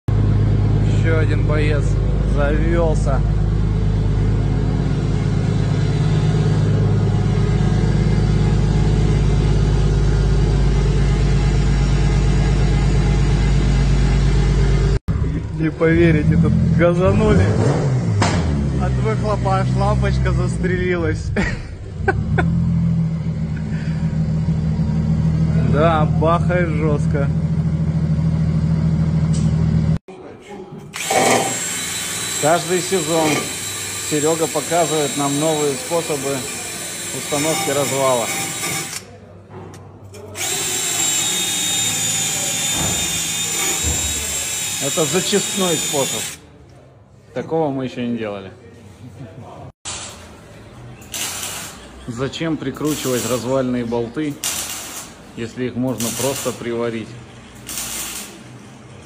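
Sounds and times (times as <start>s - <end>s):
car engine idling: 0.1s - 15.0s
power tool running: 3.2s - 15.0s, 30.9s - 39.1s, 40.2s - 46.5s, 52.8s - 53.5s, 54.3s - 55.2s, 55.9s - 59.0s.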